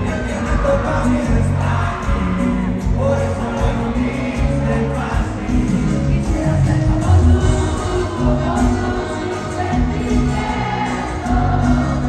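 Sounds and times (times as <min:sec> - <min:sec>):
accordion: 0:00.0 - 0:12.0
bass: 0:00.0 - 0:12.0
drums: 0:00.0 - 0:12.0
guitars: 0:00.0 - 0:12.0
people singing: 0:00.0 - 0:12.0.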